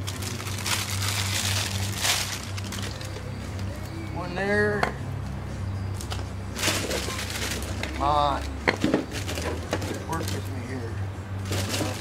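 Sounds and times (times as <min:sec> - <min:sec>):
packing paper rustling: 0:00.0 - 0:03.2, 0:11.5 - 0:12.0.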